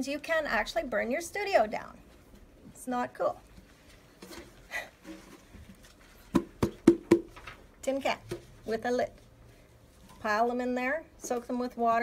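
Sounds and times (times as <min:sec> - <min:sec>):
sharp knocks on hard object: 0:06.3 - 0:07.3.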